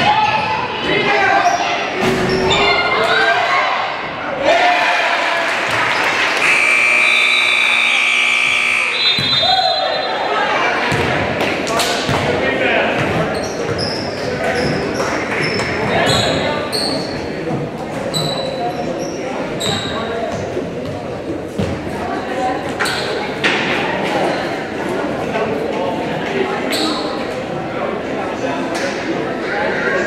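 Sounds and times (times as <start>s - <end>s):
echoing crowd chatter: 0.0s - 30.0s
scoreboard buzzer: 6.4s - 9.4s.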